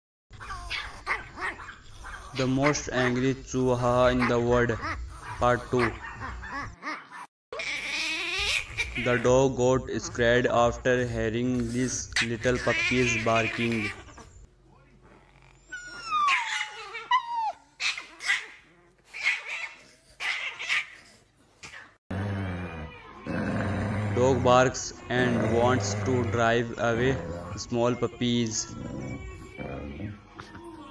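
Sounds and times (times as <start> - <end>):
small dog barking angrily: 0.4 - 2.8, 5.1 - 7.3, 17.8 - 21.0.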